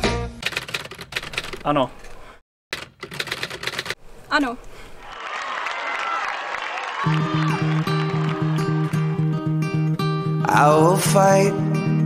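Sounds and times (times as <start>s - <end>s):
typewriter key clacks: 0.4s - 1.7s, 2.8s - 4.0s
person singing: 10.3s - 12.0s.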